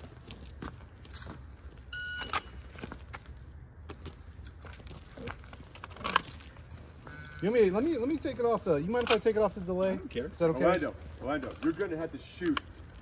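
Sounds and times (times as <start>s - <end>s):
light clicks and gear rustles: 0.0s - 13.0s
shot timer beep: 1.9s - 2.5s.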